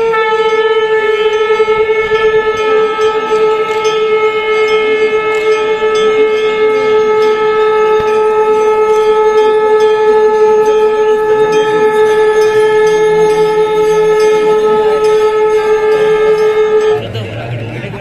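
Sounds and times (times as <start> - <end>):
conch shells blown: 0.0 - 17.1.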